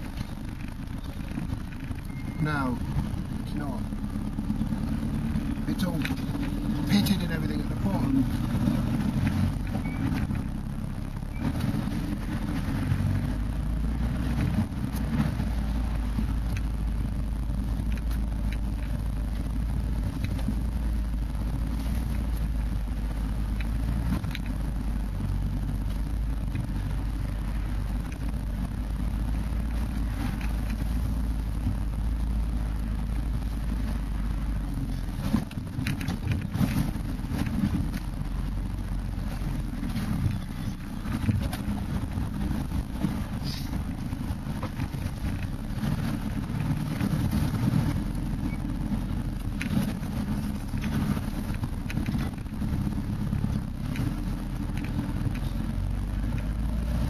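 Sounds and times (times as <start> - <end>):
vehicle engine rumbling inside cab: 0.0 - 57.0.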